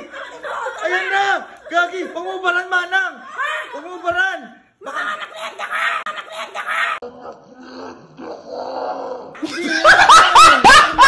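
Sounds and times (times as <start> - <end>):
woman shrieking laughter: 3.2 - 3.8, 4.8 - 7.0.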